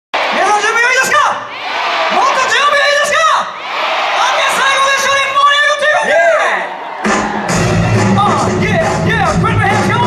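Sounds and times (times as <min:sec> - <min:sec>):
audience screaming and cheering: 0:00.2 - 0:10.0.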